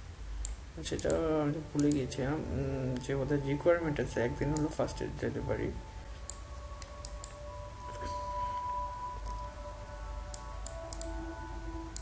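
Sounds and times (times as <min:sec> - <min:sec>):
faint background music: 0:00.0 - 0:12.0
low hum: 0:00.0 - 0:12.0
computer mouse clicks: 0:00.4 - 0:01.2, 0:01.8 - 0:02.0, 0:06.2 - 0:07.4, 0:10.3 - 0:11.2.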